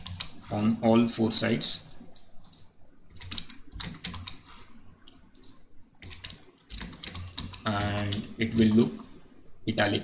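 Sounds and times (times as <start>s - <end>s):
keyboard typing clicks: 0.0s - 0.3s, 2.1s - 4.4s, 5.1s - 9.1s.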